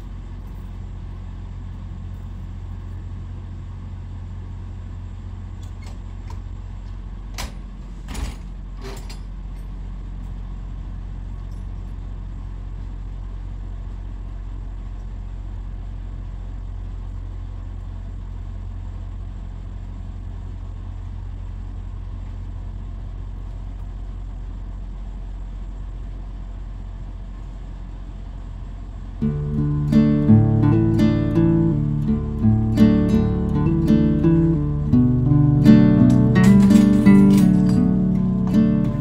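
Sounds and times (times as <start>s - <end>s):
diesel engine idling: 12.0s - 39.0s.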